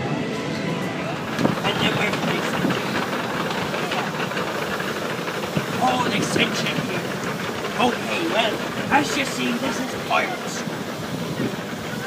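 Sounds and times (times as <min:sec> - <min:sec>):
indistinct voices: 0:00.0 - 0:12.0
steady hiss: 0:01.2 - 0:12.0.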